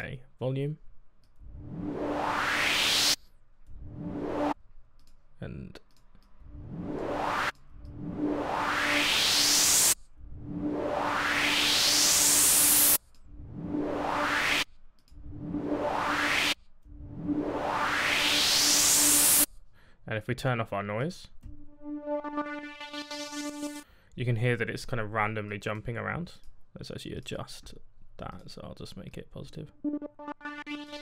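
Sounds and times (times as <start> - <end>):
low synth tone: 1.3 - 4.6, 6.4 - 19.5, 21.4 - 23.8, 29.8 - 31.0
white noise riser: 1.4 - 4.6, 6.3 - 19.5, 21.5 - 23.8, 29.8 - 31.0.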